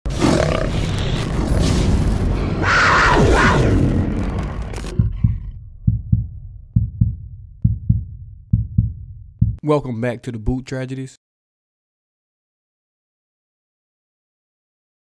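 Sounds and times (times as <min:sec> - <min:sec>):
low double thumps: 0:04.9 - 0:09.6.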